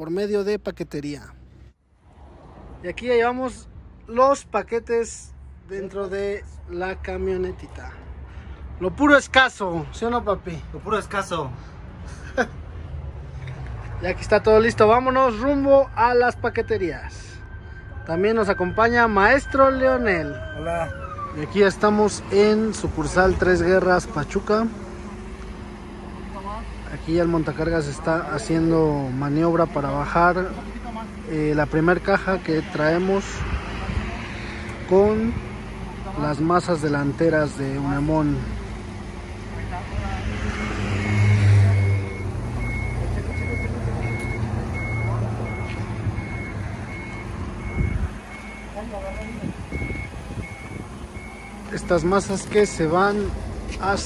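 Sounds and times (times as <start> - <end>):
reversing alarm beeping: 15.3 - 21.5, 41.5 - 52.8
forklift engine running: 42.0 - 54.0.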